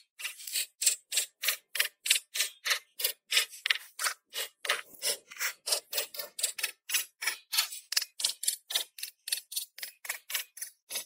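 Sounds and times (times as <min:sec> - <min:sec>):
pick hammer chipping stone: 0:00.0 - 0:11.0.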